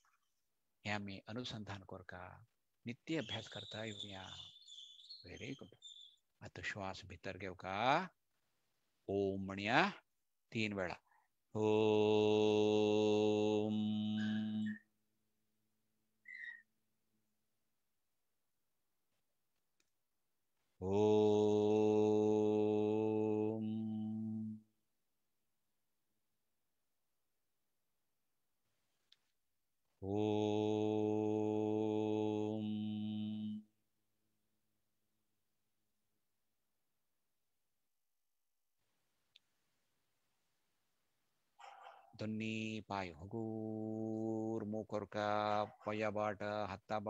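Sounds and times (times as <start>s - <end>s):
man chanting om: 2.9s - 4.5s, 11.6s - 14.9s, 20.8s - 24.7s, 30.0s - 33.7s, 42.1s - 47.0s.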